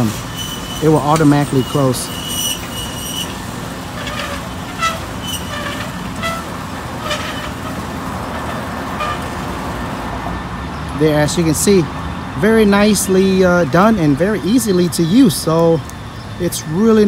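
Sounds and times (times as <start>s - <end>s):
electric gate motor running: 0.0s - 10.0s.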